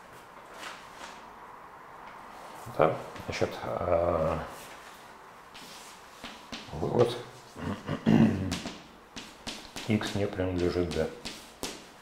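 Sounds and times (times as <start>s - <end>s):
chalk tapping on blackboard: 8.5s - 11.9s.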